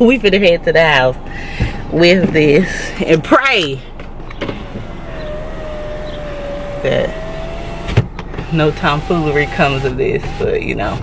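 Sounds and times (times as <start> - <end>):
car engine idling: 0.0 - 11.0
power window motor whine: 4.3 - 11.0.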